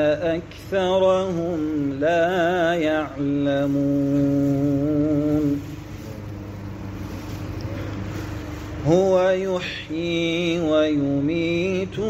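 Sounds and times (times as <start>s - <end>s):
man chanting a hymn: 0.0s - 6.6s, 8.8s - 12.0s
low steady hum: 0.0s - 12.0s.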